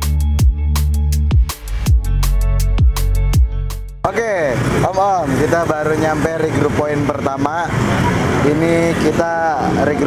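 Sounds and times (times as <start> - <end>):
road traffic hum: 0.0 - 10.0
people talking: 4.1 - 7.8, 8.4 - 10.0.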